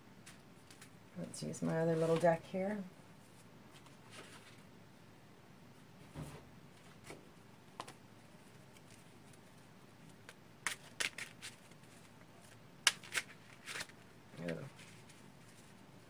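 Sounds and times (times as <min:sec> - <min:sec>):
cards shuffling and snapping: 0:10.1 - 0:15.1.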